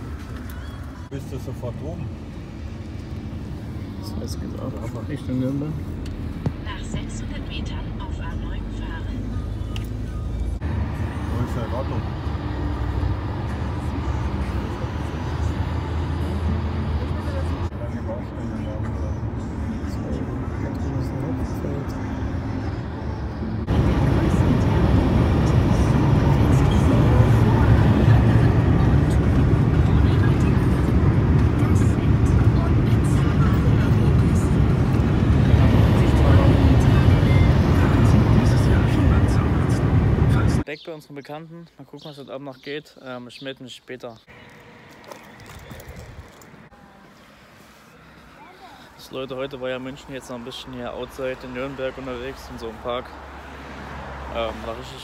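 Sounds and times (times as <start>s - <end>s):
car road and engine noise: 0.0s - 40.8s, 44.0s - 55.0s.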